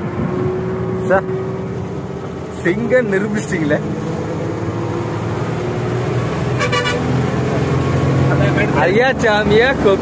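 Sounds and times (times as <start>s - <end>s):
diesel engine running: 0.0s - 10.0s
vehicle horn toot: 6.6s - 7.1s.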